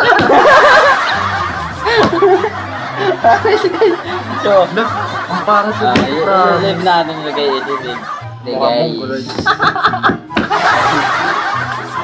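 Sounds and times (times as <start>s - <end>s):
men laughing: 0.0s - 12.0s.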